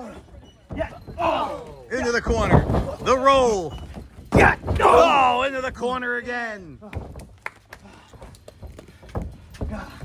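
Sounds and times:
heavy thumps: 0.1s - 5.9s.

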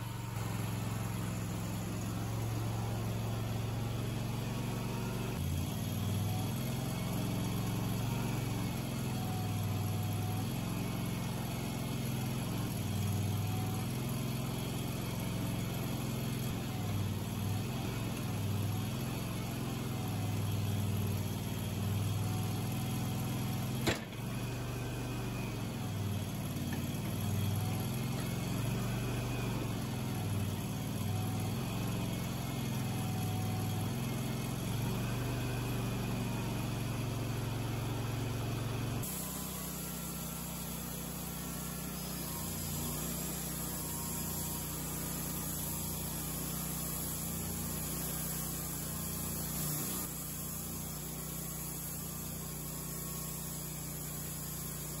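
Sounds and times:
sawmill engine running: 0.0s - 55.0s.

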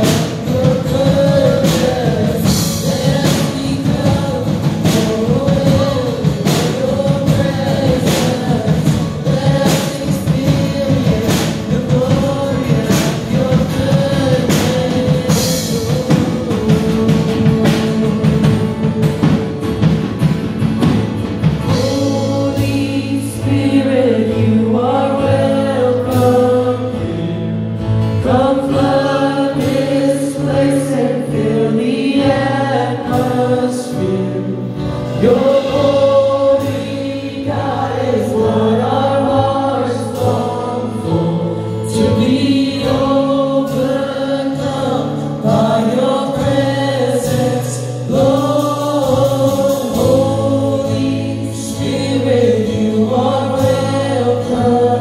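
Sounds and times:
drum and cymbal hits: 0.0s - 27.0s, 28.0s - 55.0s
low bass line: 0.0s - 44.0s
acoustic guitar: 0.0s - 55.0s
voices singing together: 0.0s - 55.0s.

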